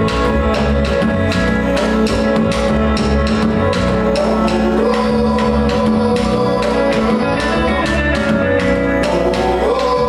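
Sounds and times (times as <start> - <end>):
acoustic guitar: 0.0 - 10.0
congas: 0.0 - 10.0
drum kit: 0.0 - 10.0
electric bass: 0.0 - 10.0.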